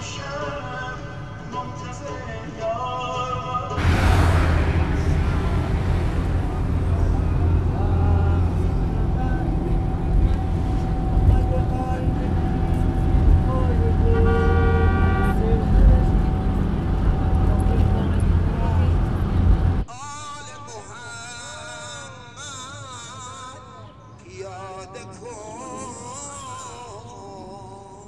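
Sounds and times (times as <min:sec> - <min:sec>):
car horns: 0:03.8 - 0:19.8
engine and road rumble: 0:03.8 - 0:19.9
person singing: 0:19.9 - 0:28.0.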